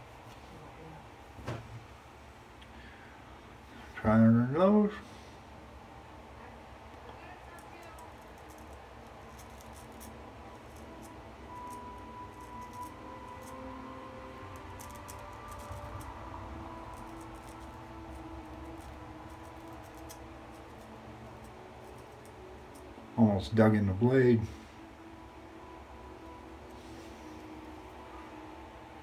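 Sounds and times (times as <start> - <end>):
razor scraping whiskers: 7.5 - 23.0.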